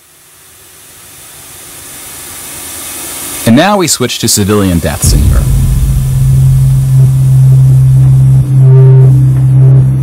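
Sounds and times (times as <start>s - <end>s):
hissing transition sound effect: 4.5s - 8.4s.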